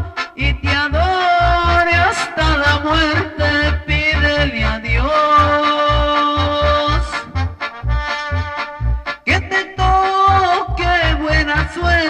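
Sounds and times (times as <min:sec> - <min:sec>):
bass beat: 0:00.0 - 0:12.0
clipped horn notes: 0:00.0 - 0:12.0.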